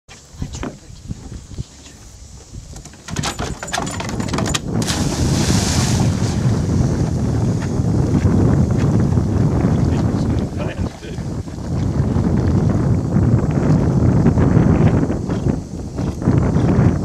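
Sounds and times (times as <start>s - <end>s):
wind on microphone: 0.2s - 17.0s
dog splashing into water: 4.8s - 6.6s.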